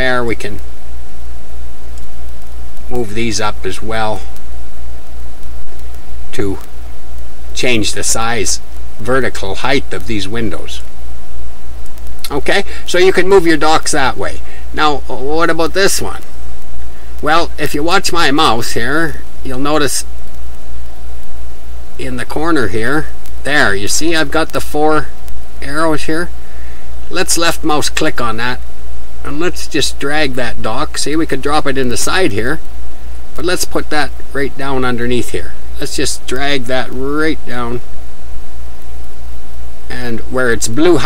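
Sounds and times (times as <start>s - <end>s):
faint hiss: 0.0s - 41.0s
steady low hum: 0.0s - 41.0s.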